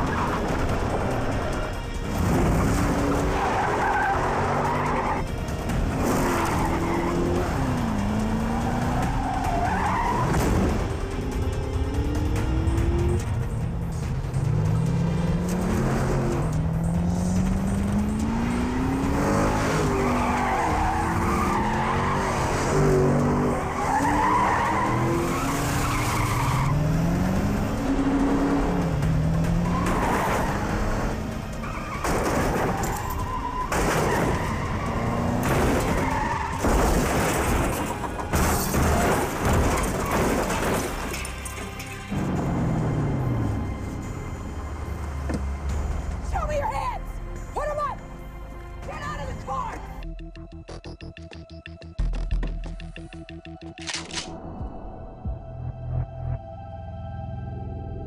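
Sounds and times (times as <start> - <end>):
tires squealing and skidding: 0.0 - 11.0, 18.0 - 43.6
car engines revving: 0.0 - 46.6.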